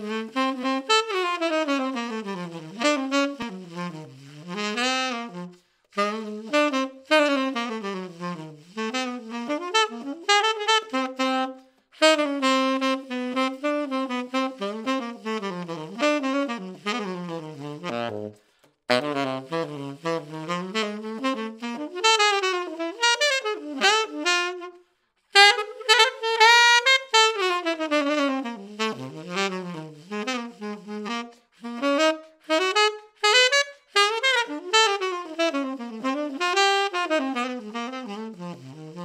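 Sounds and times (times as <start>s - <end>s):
solo tenor saxophone: 0.0s - 39.0s.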